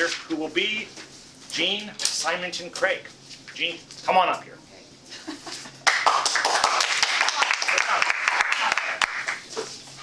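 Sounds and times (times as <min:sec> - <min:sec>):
audience applauding: 0:05.8 - 0:09.5.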